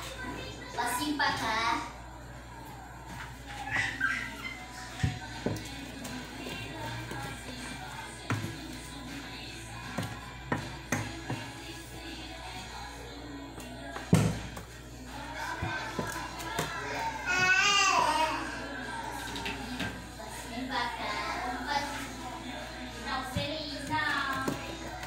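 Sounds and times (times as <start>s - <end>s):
background music: 0.7s - 25.0s.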